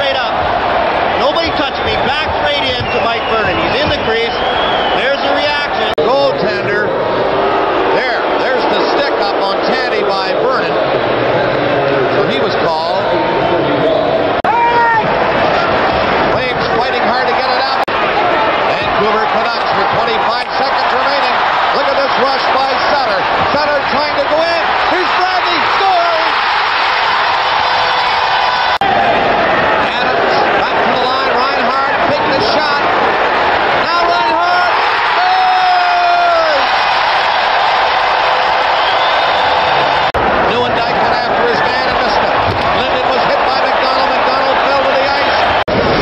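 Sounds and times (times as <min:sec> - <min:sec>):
crowd din of voices: 0:00.0 - 0:46.0
individual shouts: 0:14.4 - 0:15.1.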